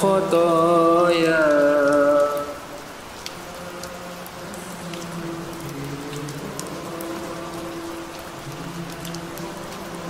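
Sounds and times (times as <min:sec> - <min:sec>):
rain on pavement: 0:00.0 - 0:10.0.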